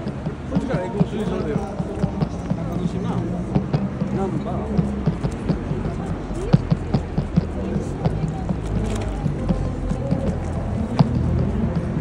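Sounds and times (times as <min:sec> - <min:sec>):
rapid short knocks: 0:00.0 - 0:12.0
street noise: 0:00.0 - 0:12.0.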